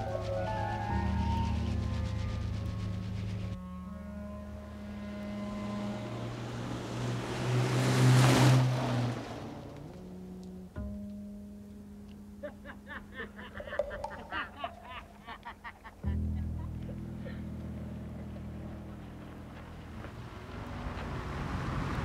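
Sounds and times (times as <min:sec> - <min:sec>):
film music with held notes: 0:00.0 - 0:21.3.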